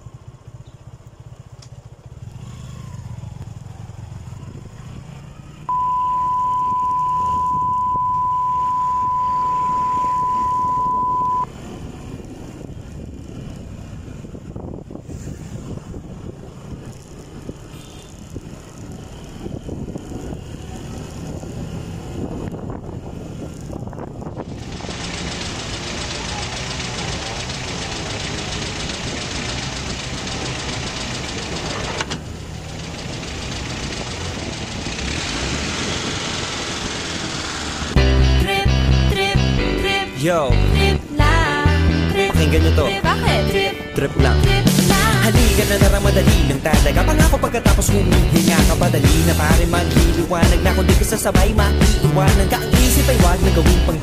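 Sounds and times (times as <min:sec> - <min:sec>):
motorcycle engine accelerating: 0:00.0 - 0:39.0
high beep: 0:05.7 - 0:11.5.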